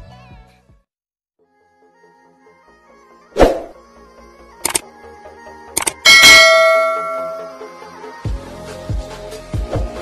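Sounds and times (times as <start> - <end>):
quick double click: 4.6 - 4.8, 5.8 - 6.0
bright bell ding: 6.0 - 7.8.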